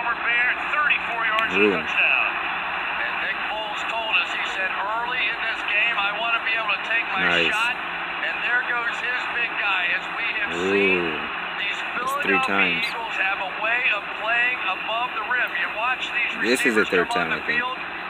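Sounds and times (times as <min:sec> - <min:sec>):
commentators talking: 0:00.0 - 0:02.3, 0:03.0 - 0:17.8
stadium crowd roar: 0:00.0 - 0:18.0.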